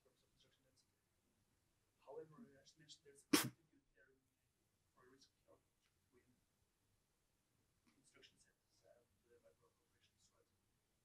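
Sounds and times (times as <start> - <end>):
faint speech: 0.0 - 1.0, 2.0 - 4.3, 4.9 - 6.5, 7.8 - 10.6.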